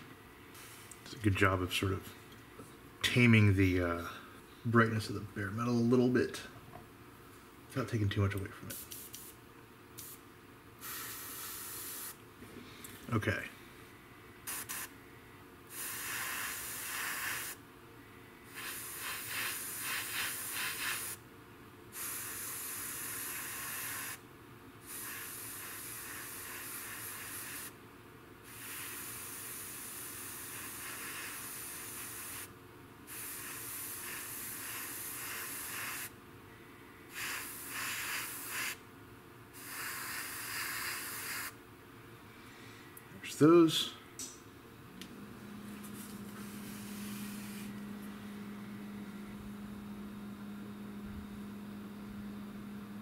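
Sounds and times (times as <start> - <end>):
airbrush spraying hiss: 0.5 - 1.0, 8.7 - 9.4, 10.0 - 10.2, 10.8 - 12.2, 14.4 - 14.9, 15.7 - 17.6, 18.5 - 21.2, 22.0 - 24.2, 24.8 - 27.8, 28.5 - 32.5, 33.1 - 36.1, 37.1 - 38.8, 39.6 - 41.6, 45.8 - 47.8.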